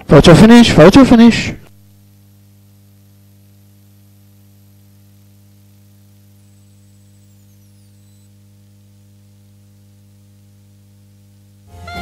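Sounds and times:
electrical mains hum: 0.0 - 12.0
high-pitched electronic whine: 0.4 - 10.5, 11.5 - 12.0.

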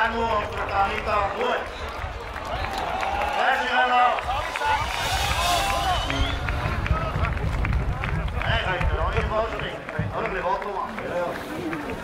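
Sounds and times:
voices talking: 0.0 - 12.0
low rumble: 4.1 - 9.3.

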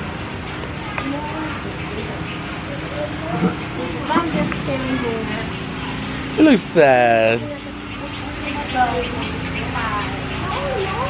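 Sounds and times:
people talking in background: 0.0 - 11.0
steady low hum: 0.0 - 11.0.

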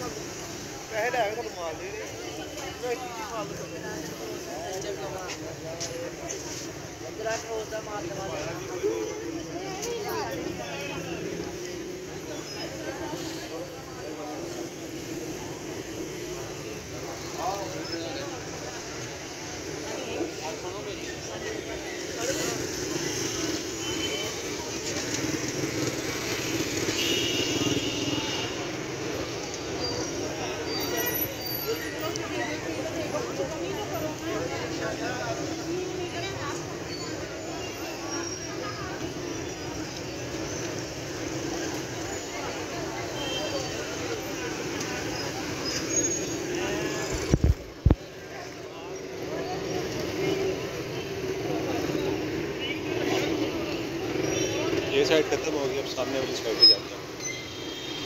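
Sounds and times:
vehicle and motorcycle engines: 0.0 - 58.0.

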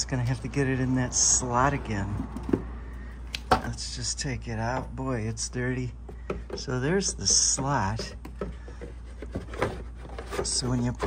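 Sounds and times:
plastic knocks and scrapes: 6.0 - 7.3, 7.9 - 11.0.

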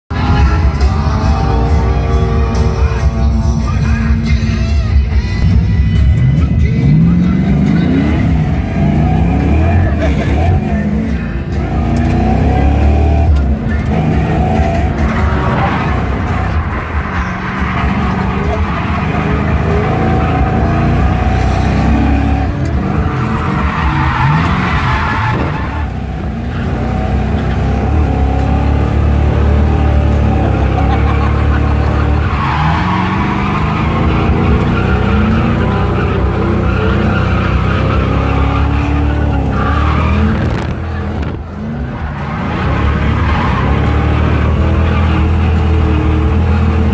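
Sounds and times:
car engine revving: 5.4 - 46.9
tyres squealing: 7.1 - 46.9.

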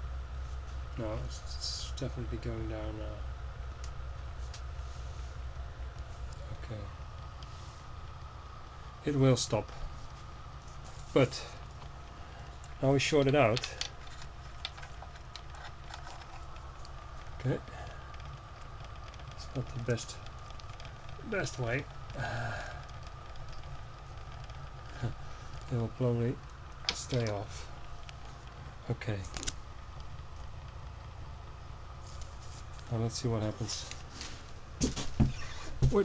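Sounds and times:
spinning rotor humming: 0.0 - 36.0
faint irregular ticks: 9.5 - 34.1.

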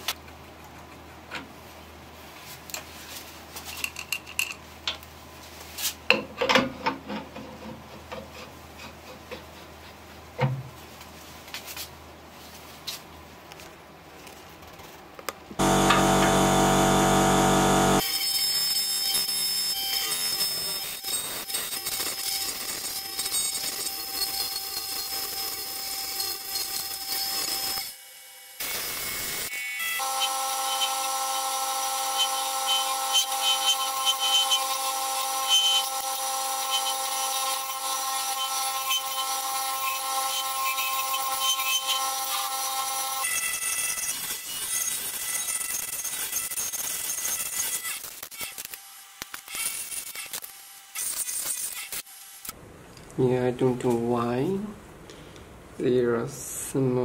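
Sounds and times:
lathe humming: 15.6 - 18.0
loud pitched sound: 15.6 - 18.0
turning tool scraping: 15.6 - 18.0.

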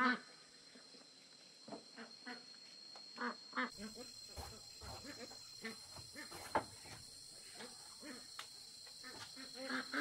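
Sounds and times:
high-pitched insect drone: 0.0 - 10.0.

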